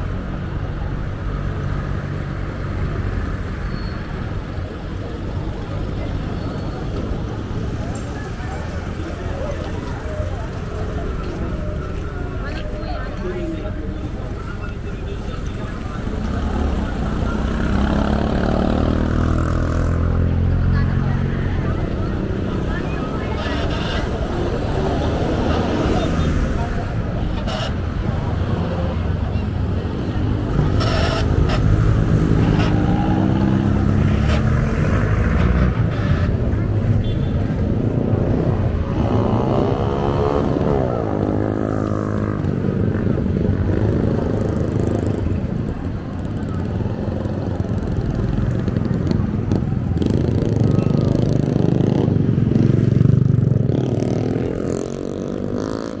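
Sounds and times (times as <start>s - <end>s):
motorcycle engines passing: 0.0s - 56.0s
road noise: 0.0s - 56.0s
people talking: 4.1s - 55.8s.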